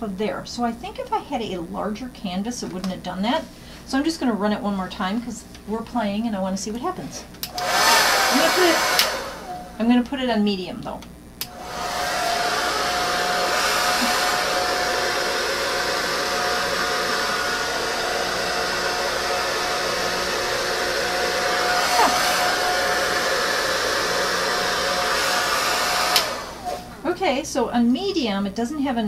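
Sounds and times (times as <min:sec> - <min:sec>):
hair dryer switch click: 0:07.4 - 0:07.9, 0:08.8 - 0:09.3, 0:26.0 - 0:26.8
hair dryer blowing air: 0:07.4 - 0:09.9, 0:11.4 - 0:27.1.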